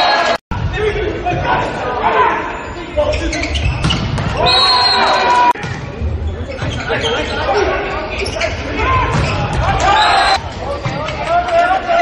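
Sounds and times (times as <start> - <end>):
crowd and voices: 0.0 - 12.0.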